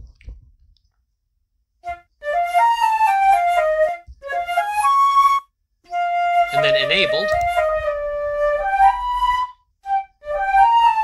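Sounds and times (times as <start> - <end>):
solo flute melody: 1.8 - 11.0.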